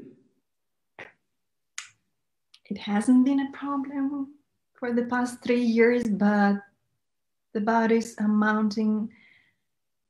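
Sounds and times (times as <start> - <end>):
sharp mouth noises: 1.0 - 2.0.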